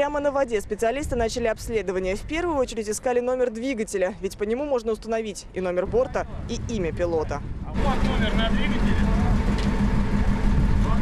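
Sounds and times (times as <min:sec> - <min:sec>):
engine rumbling: 0:05.2 - 0:11.0.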